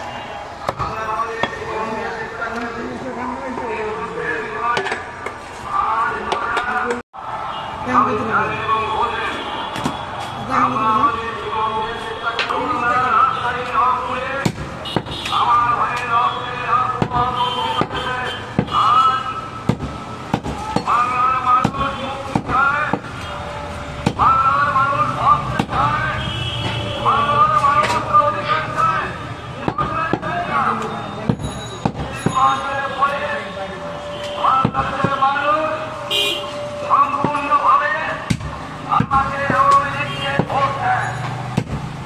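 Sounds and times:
voices: 0.0 - 19.7, 20.4 - 41.4
street noise: 0.0 - 42.0.

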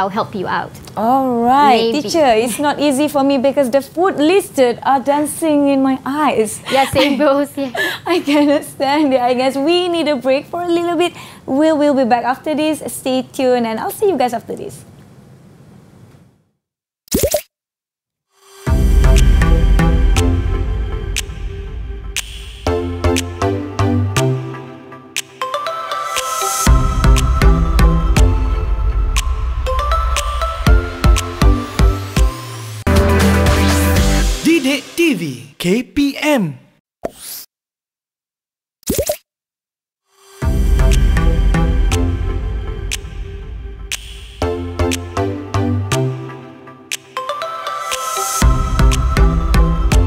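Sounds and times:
cartoon bloop rising in pitch: 17.1 - 17.5.

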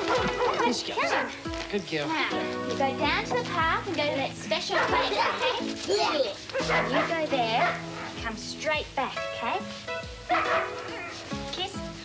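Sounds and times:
dog barking: 0.0 - 1.4, 4.5 - 8.2, 10.3 - 11.2
soft background music: 0.0 - 12.0.

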